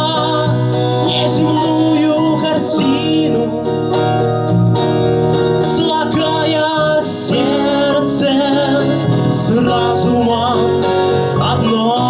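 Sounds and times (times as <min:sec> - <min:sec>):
man singing: 0:00.0 - 0:04.3, 0:05.5 - 0:12.0
acoustic guitar strumming: 0:00.0 - 0:12.0.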